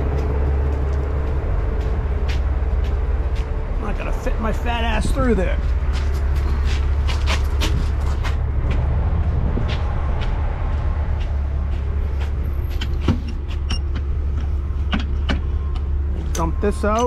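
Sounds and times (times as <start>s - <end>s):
footsteps on gravel: 0.0s - 13.7s
diesel truck engine idling: 0.0s - 17.0s.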